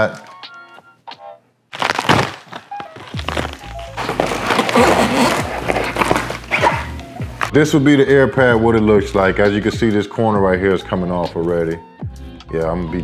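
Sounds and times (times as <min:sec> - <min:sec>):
background music: 0:00.0 - 0:01.5, 0:02.6 - 0:13.0
plastic packaging crinkling: 0:01.7 - 0:07.5.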